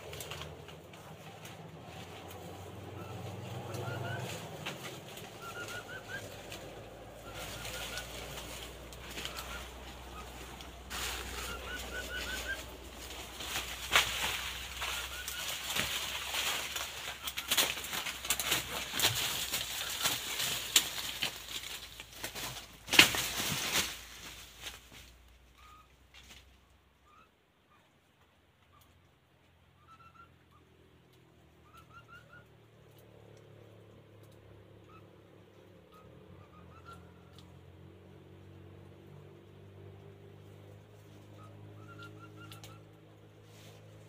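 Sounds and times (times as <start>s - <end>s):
birds chirping: 0.0s - 21.7s, 29.6s - 33.0s, 34.2s - 37.6s, 40.5s - 43.2s
wings flapping: 0.0s - 25.8s
rustling in leaves: 0.0s - 27.3s, 29.8s - 44.0s.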